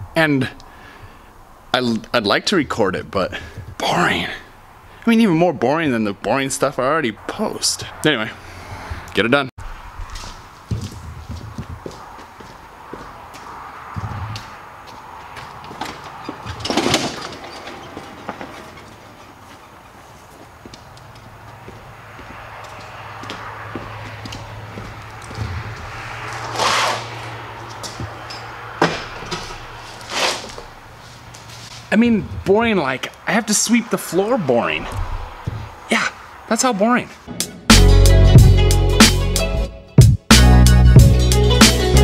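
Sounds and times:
footsteps on concrete floor: 10.0s - 16.6s, 17.7s - 32.5s, 34.9s - 35.8s
short squeaks: 15.8s - 20.4s.

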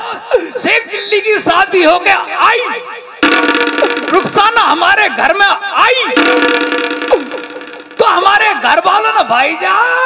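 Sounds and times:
buzzy sustained tone: 3.2s - 4.8s, 6.2s - 8.4s.

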